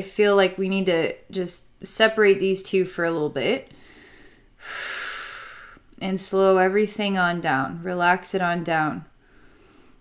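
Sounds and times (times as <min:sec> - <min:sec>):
woman breathing in: 0:03.7 - 0:05.9, 0:09.2 - 0:10.0.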